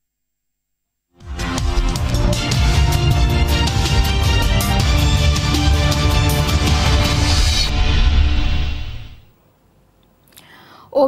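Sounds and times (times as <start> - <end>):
news theme music: 1.2 - 9.3
woman drawing breath: 10.3 - 10.9.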